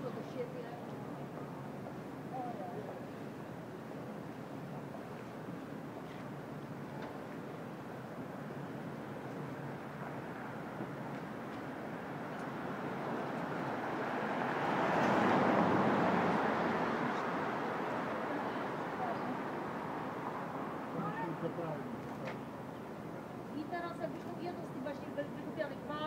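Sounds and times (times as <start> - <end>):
passing vehicles hissing: 11.7 - 22.7.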